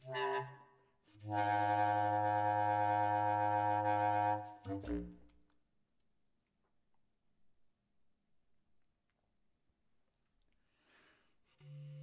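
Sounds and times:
bass clarinet low note: 1.2 - 5.3.

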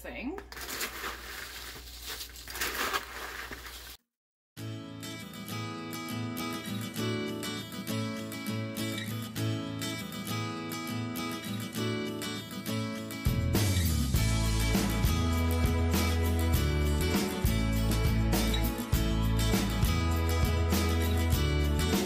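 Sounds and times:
spoon stirring snack mix in bowl: 0.4 - 4.0
background music with steady beat: 13.3 - 22.0.

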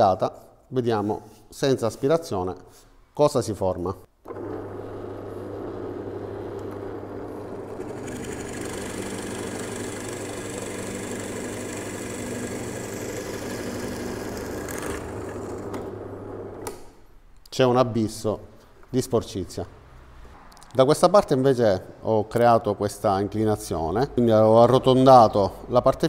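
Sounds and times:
drill press motor hum: 4.2 - 16.8
drill bit rasping wood: 5.1 - 15.9.

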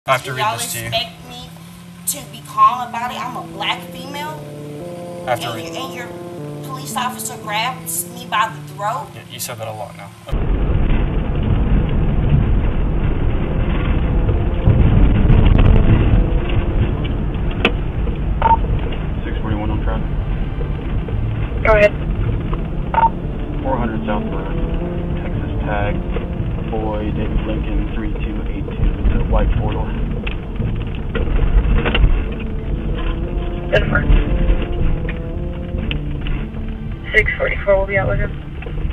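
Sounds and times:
car engine and road rumble: 0.0 - 38.9
muffled police radio chatter: 0.1 - 1.3, 33.7 - 34.3
short beeps: 22.9 - 23.2.

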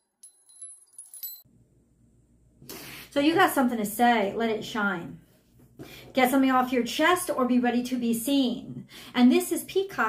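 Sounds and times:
high tinkling chime notes: 0.0 - 1.5.

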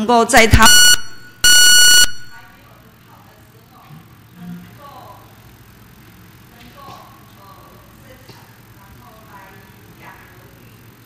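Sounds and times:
electronic buzzer high tone: 0.5 - 2.5.

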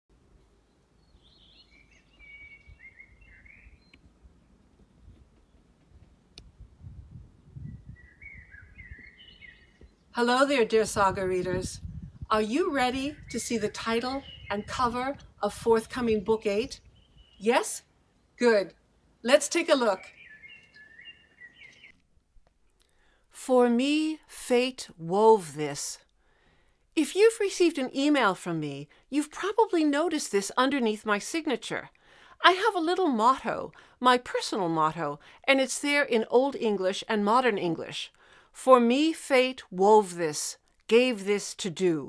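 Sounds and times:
songbird warbling: 1.0 - 4.0, 7.6 - 10.2, 12.2 - 17.7, 19.9 - 22.0.

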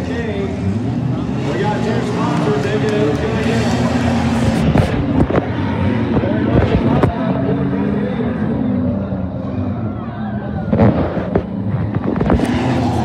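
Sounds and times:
race car engines revving: 0.0 - 13.0.

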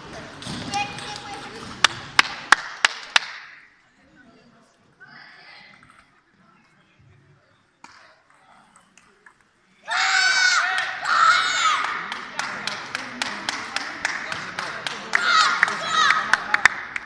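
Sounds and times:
rhythmic clapping: 1.0 - 3.6, 11.8 - 17.0
children shouting: 9.9 - 11.9, 15.1 - 16.4.

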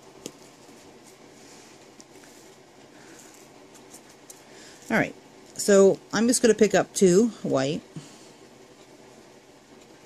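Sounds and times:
person speaking: 4.8 - 8.2.

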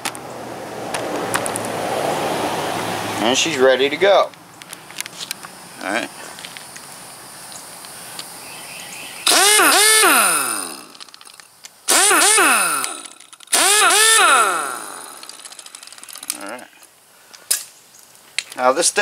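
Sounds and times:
pneumatic impact wrench whirring: 9.2 - 16.4.

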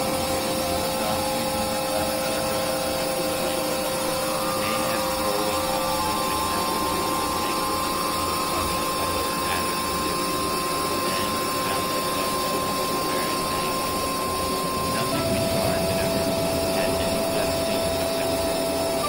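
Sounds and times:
electronic noise drone music: 0.0 - 19.0.

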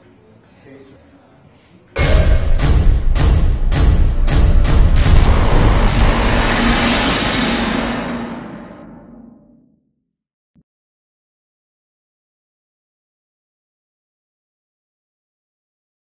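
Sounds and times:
sharp percussive hits: 2.0 - 9.6
loud boom: 2.0 - 9.8
long low rumble: 3.2 - 9.6.

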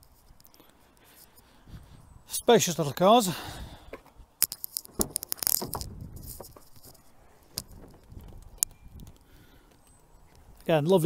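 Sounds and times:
car door clicks and rattles: 4.8 - 6.6.

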